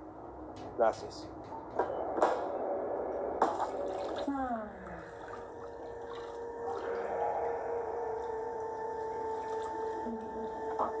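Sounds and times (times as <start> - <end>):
bath water splashing: 3.4 - 11.0.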